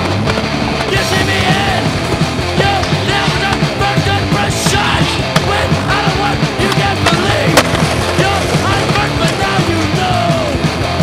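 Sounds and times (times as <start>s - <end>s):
skateboard clacks: 0.0s - 10.6s
rock music: 0.0s - 11.0s
skateboard wheels rolling: 0.0s - 11.0s.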